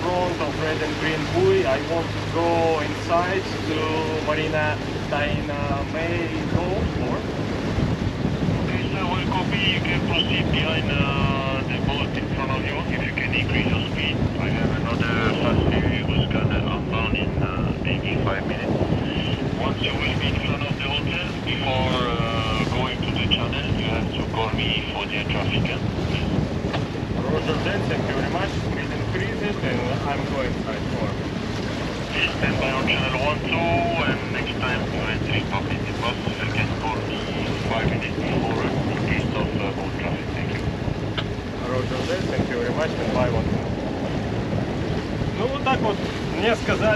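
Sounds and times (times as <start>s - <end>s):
radio voice traffic: 0.0s - 7.3s, 8.7s - 26.4s, 27.2s - 31.2s, 32.1s - 40.7s, 41.6s - 43.6s
sea noise: 0.0s - 46.9s
wind buffeting microphone: 0.0s - 46.9s.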